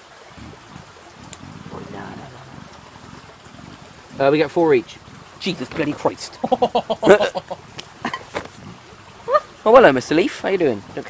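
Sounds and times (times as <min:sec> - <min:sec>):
stream trickling: 0:00.0 - 0:11.0
muffled voice murmuring: 0:01.5 - 0:02.8.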